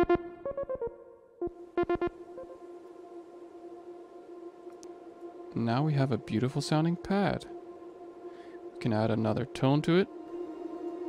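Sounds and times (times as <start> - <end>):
plucked synthesizer notes: 0.0 - 2.7
sustained synthesizer pad: 0.0 - 11.0.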